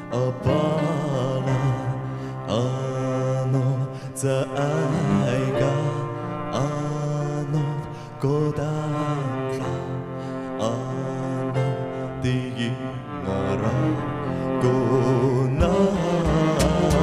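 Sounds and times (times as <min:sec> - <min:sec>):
bowed cello: 0:00.0 - 0:17.0
keyboard: 0:00.0 - 0:17.0
man singing slow song: 0:00.0 - 0:17.0
cajon drum: 0:16.3 - 0:17.0.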